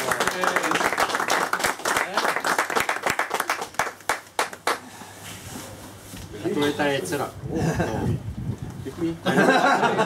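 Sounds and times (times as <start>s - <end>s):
group clapping: 0.0s - 4.9s.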